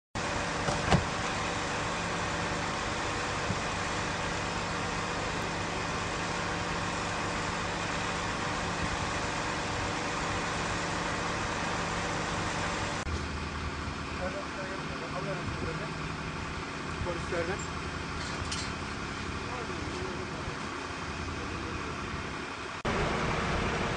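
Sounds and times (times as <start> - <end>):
motor vehicle humming: 0.2 - 23.9.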